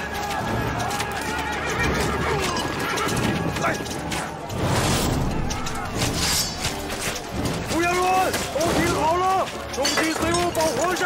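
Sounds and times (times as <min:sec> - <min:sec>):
horses whinnying: 0:00.0 - 0:04.4
men shouting: 0:00.0 - 0:04.6
clattering hooves: 0:00.0 - 0:11.0.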